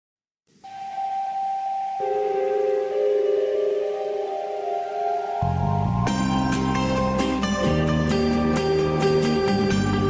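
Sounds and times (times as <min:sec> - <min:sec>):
karaoke backing track held notes: 0:02.0 - 0:10.0.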